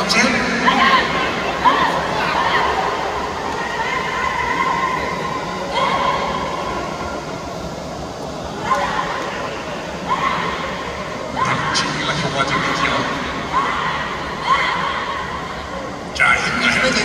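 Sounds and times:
crowd din: 0.0s - 17.0s.

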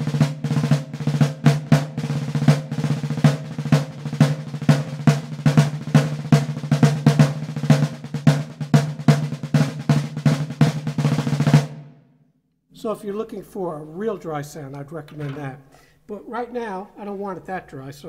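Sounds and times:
marching snare drum strokes and rolls: 0.0s - 11.9s.

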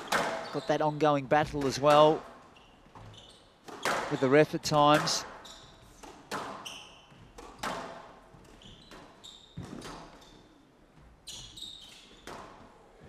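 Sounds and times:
shoes squeaking on court: 0.0s - 12.8s
squash ball cracking: 6.0s - 6.6s.

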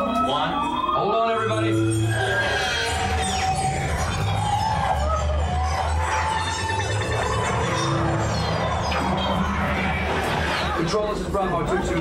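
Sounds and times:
dramatic soundtrack music: 0.0s - 12.0s.

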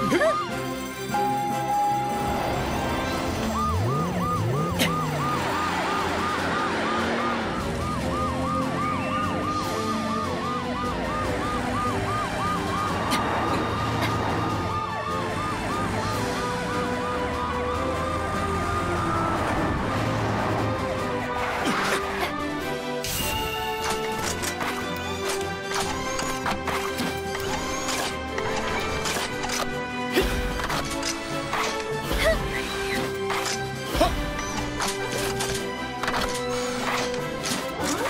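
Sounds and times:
rising and falling siren wails: 0.0s - 30.0s
background music: 0.0s - 38.0s
fast yelping siren: 3.1s - 20.0s.

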